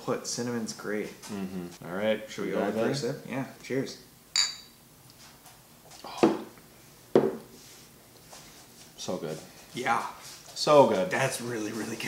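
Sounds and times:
glasses clinking: 4.3s - 4.8s
glasses knocking on wooden table: 7.1s - 7.4s.

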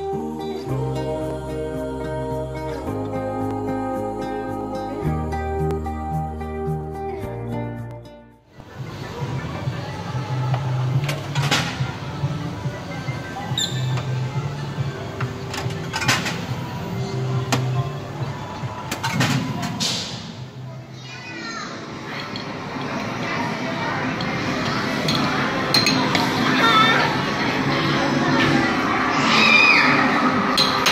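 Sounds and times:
soft guitar music: 0.0s - 8.5s.

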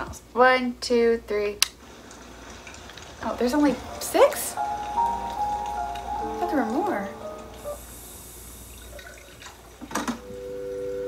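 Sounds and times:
electronic melody: 3.8s - 7.9s, 10.2s - 11.0s.

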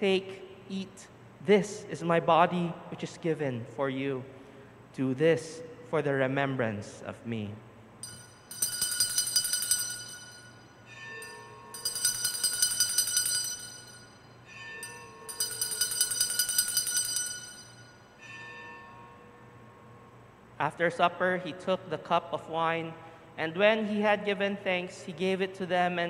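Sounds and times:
altar bells ringing: 8.0s - 20.0s.

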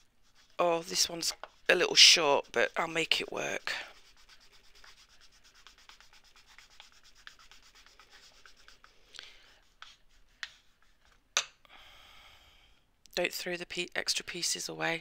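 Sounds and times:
acrylic block rubbing on clay: 0.0s - 11.2s.

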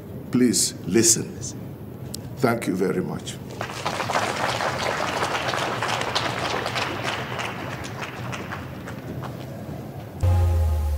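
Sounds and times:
audience applause: 3.5s - 10.0s.

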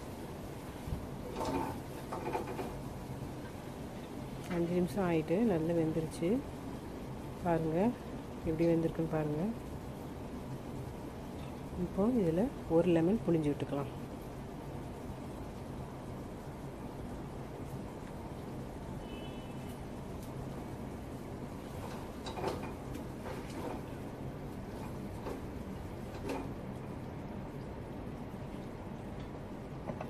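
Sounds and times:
low kitchen hum: 0.0s - 30.0s.

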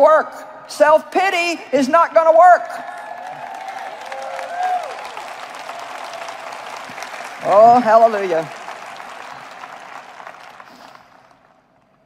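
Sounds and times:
audience applauding: 2.9s - 12.0s.

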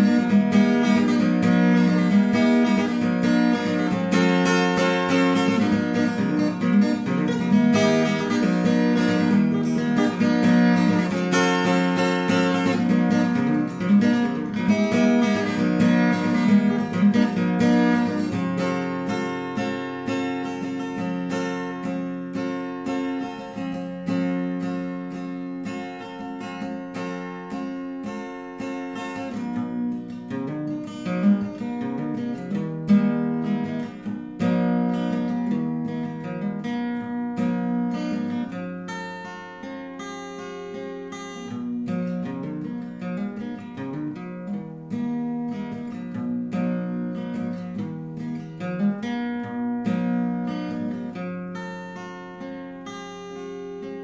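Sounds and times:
acoustic guitar playing: 0.0s - 54.0s.

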